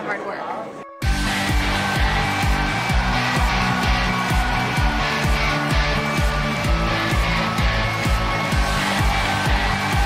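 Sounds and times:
electronic music with fast beat: 1.0 - 10.0.

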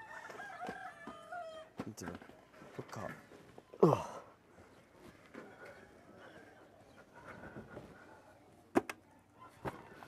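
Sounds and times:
rooster crowing: 0.0 - 1.7.

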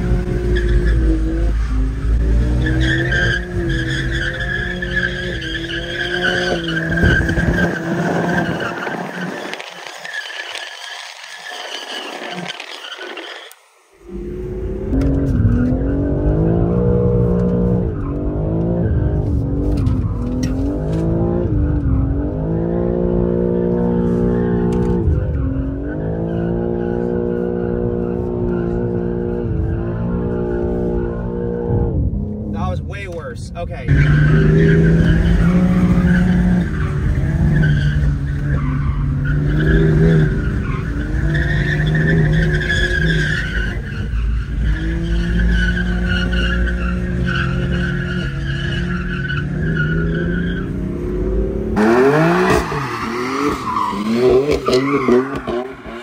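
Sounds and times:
car engine at high revs: 0.0 - 11.2, 13.3 - 32.6, 33.8 - 56.0
tires squealing: 0.0 - 31.8, 33.8 - 56.0.

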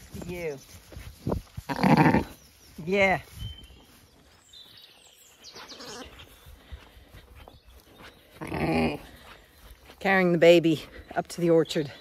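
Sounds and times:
sheep bleating: 1.7 - 2.4, 5.7 - 6.2.

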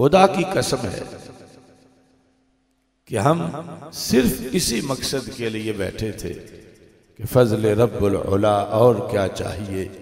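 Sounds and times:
man speaking into a microphone: 0.0 - 1.4, 3.0 - 6.6, 7.2 - 10.0.

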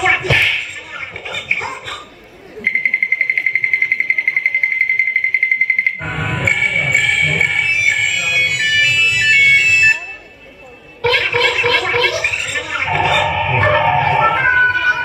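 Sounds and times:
pulsing electronic buzzing tone: 11.2 - 15.0.

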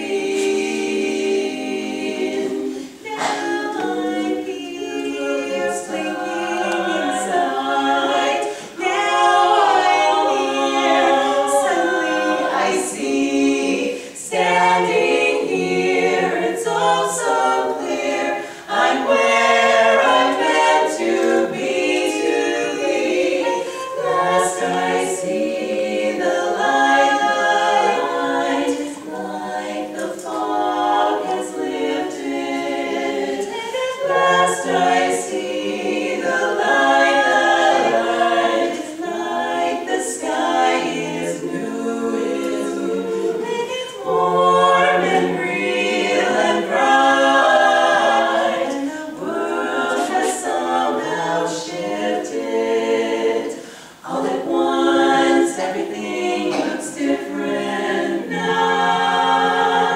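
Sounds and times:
women singing in close harmony: 0.0 - 59.9.

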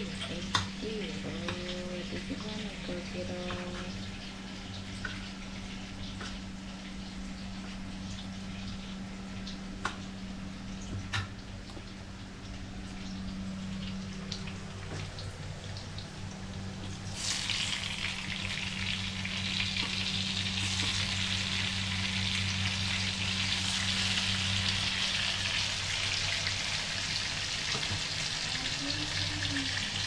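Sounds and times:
food sizzling in hot oil: 16.9 - 30.0.

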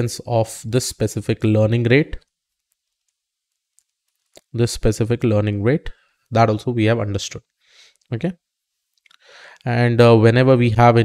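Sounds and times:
person speaking: 0.0 - 2.3, 4.3 - 7.5.

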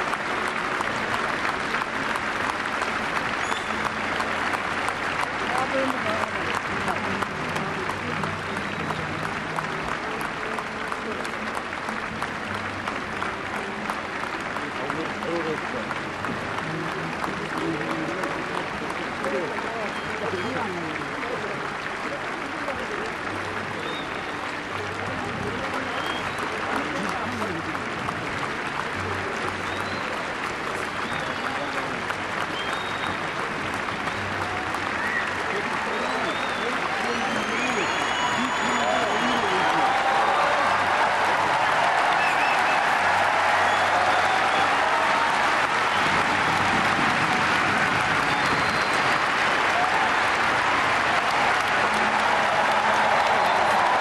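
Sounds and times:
audience applauding: 0.0 - 54.0
crowd voices: 0.0 - 54.0
high whistles: 36.0 - 39.5, 48.3 - 49.2.

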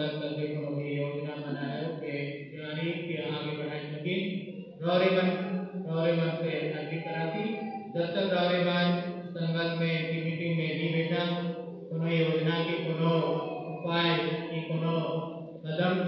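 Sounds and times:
voices chanting a prayer: 0.0 - 16.0.

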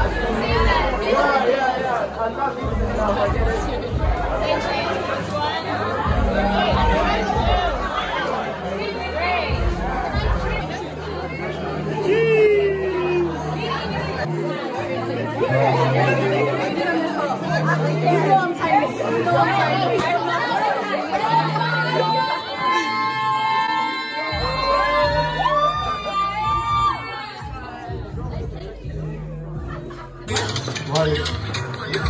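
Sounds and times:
background music with deep bass: 0.0 - 22.6, 24.2 - 32.0
crowd chatter: 0.0 - 32.0.

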